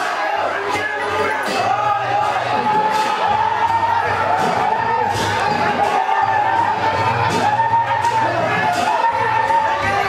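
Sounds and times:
crowd noise: 0:00.0 - 0:10.0
drums beating: 0:00.0 - 0:10.0.

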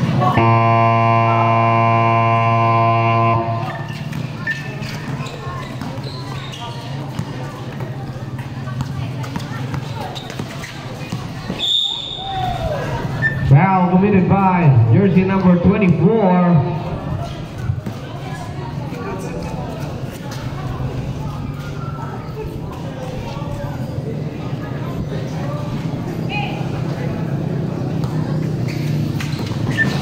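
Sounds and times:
crowd noise: 0:00.0 - 0:30.0
basketball buzzer tone: 0:00.3 - 0:03.8
ball bouncing on court: 0:03.6 - 0:08.0, 0:08.7 - 0:11.7
whistle blast: 0:11.6 - 0:12.4
man's voice: 0:13.5 - 0:16.8.

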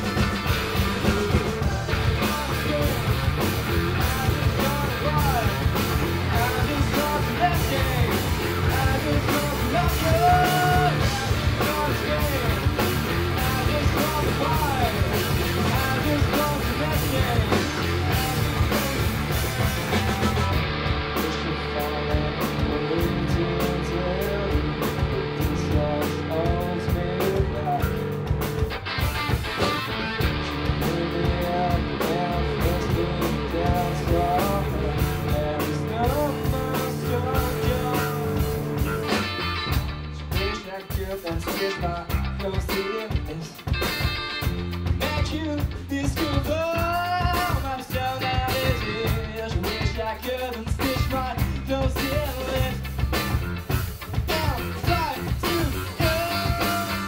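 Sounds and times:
drum kit: 0:00.0 - 0:57.0
electric bass: 0:00.0 - 0:57.0
electric guitar: 0:00.0 - 0:57.0
lead vocal singing: 0:00.7 - 0:28.7, 0:29.6 - 0:39.7, 0:45.0 - 0:52.9, 0:54.2 - 0:57.0.

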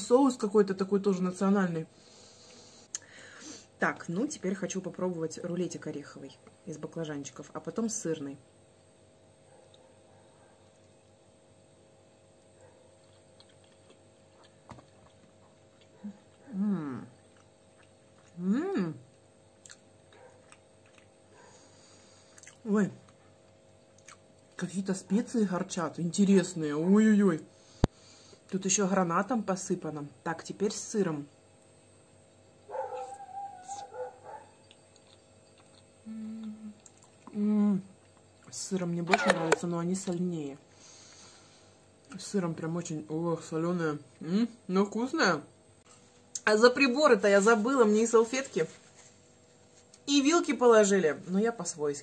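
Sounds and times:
low room hum: 0:00.0 - 0:52.0
faint chewing mouth clicks: 0:13.0 - 0:16.5, 0:19.6 - 0:21.1, 0:22.3 - 0:23.2, 0:34.6 - 0:37.4.

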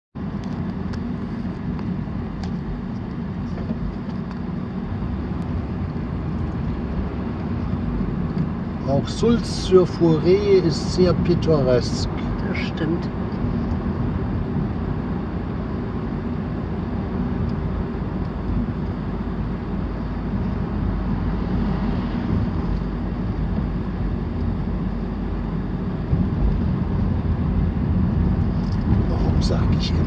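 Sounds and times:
car engine and tyre rumble: 0:00.1 - 0:30.0.

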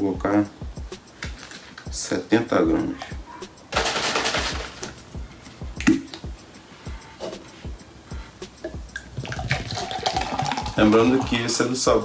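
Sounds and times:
background music with steady beat: 0:00.0 - 0:12.0
powder rustling in shaker bottle: 0:03.8 - 0:05.0.

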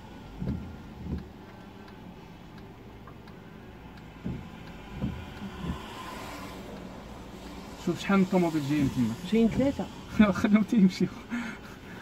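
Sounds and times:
raindrops ticking on glass: 0:00.0 - 0:07.8
low engine hum: 0:00.0 - 0:12.0
windscreen wipers swishing: 0:00.0 - 0:12.0.

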